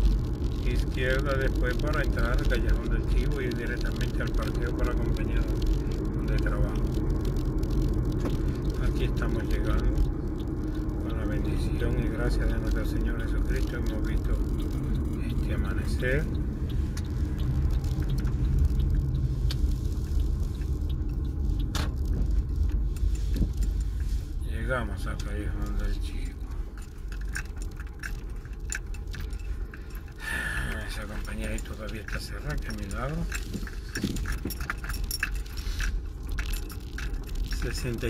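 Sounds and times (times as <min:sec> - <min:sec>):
car engine and tyre rumble: 0:00.0 - 0:38.0
light clicks and rattles: 0:00.0 - 0:38.0
keys jangling: 0:26.2 - 0:30.2, 0:31.0 - 0:38.0.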